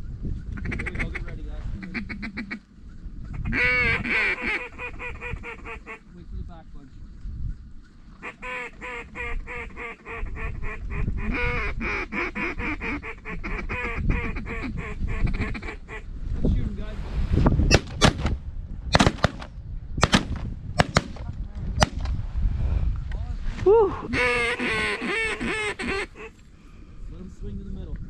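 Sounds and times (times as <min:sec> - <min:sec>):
snow goose calls: 0:00.6 - 0:02.6, 0:03.3 - 0:06.1, 0:08.2 - 0:16.1, 0:24.1 - 0:26.4
shotgun shots: 0:17.7 - 0:22.1.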